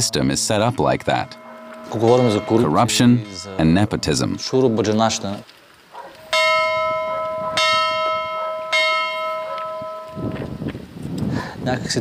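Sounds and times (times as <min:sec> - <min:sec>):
church bell ringing: 0:00.0 - 0:05.4, 0:06.3 - 0:10.6.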